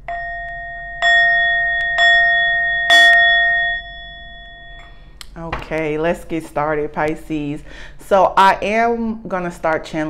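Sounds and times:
meditation bell ringing: 0.0 - 5.2.

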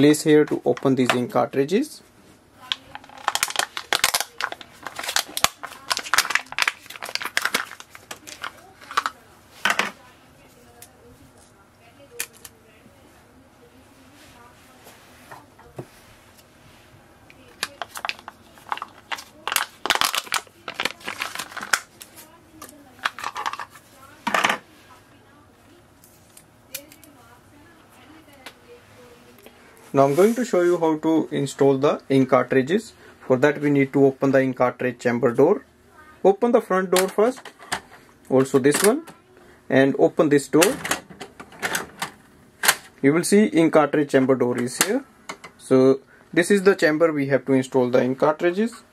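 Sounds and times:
stiff plastic crinkling: 2.6 - 10.9, 17.3 - 25.0.

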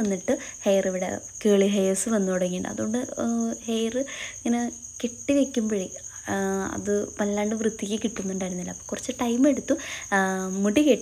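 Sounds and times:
woman speaking: 0.0 - 11.0.

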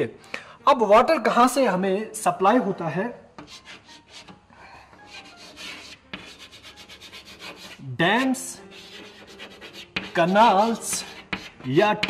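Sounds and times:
chalk scratching on blackboard: 3.4 - 4.4, 5.0 - 12.0.

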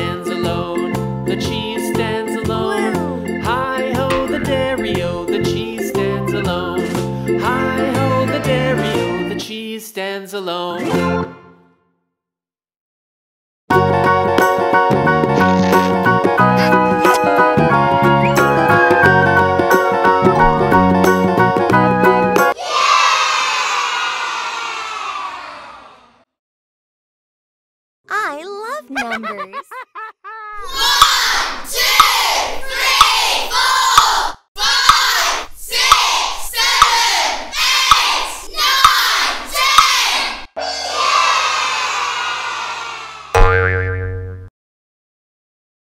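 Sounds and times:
springy cartoon boing: 4.1 - 5.7, 43.4 - 44.5.

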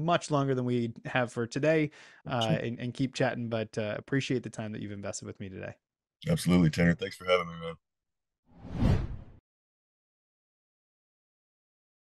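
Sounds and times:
whoosh sound effect: 8.6 - 9.4.

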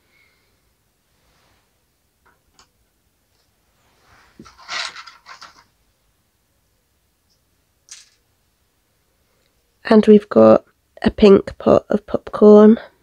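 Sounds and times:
rustling and scraping of toy pieces: 3.4 - 5.8, 7.9 - 8.3
plastic toy pieces clicking: 7.9 - 8.2.

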